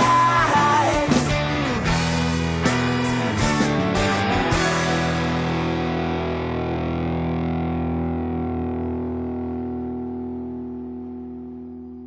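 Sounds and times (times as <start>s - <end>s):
distorted electric guitar chord ringing: 0.0s - 12.0s.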